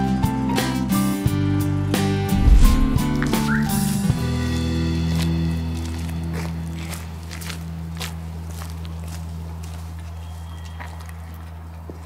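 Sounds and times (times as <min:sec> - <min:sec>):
background music: 0:00.0 - 0:06.3
footsteps on pavement: 0:04.4 - 0:12.0.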